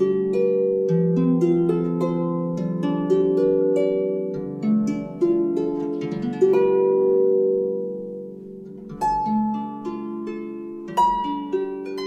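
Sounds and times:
harp chord ringing: 0.0 - 12.0.

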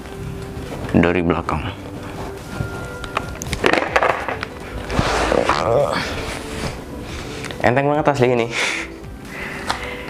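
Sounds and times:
helmet scraping and rustling: 1.7 - 7.4.

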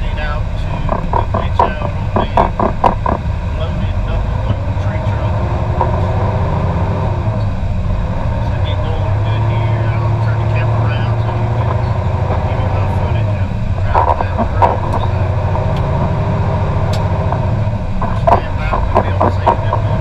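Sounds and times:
diesel engine drone: 0.0 - 20.0.

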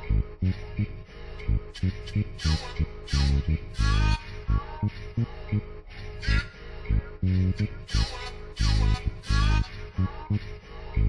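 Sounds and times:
hip-hop beat: 1.8 - 4.3, 7.3 - 10.5.

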